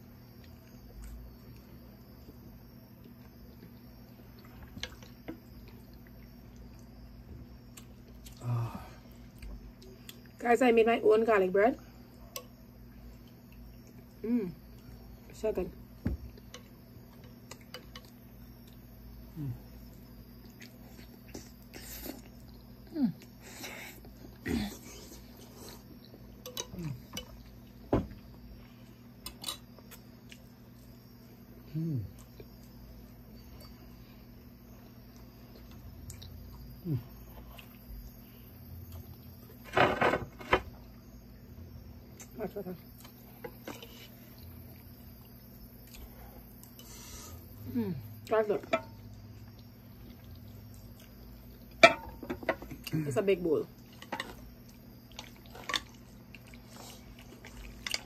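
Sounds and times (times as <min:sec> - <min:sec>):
faint low hum: 0:00.0 - 0:58.0
person humming: 0:14.2 - 0:14.6, 0:22.9 - 0:23.3, 0:31.7 - 0:32.1, 0:47.6 - 0:48.1
wet chewing and lip smacks: 0:35.2 - 0:36.7, 0:49.2 - 0:51.8.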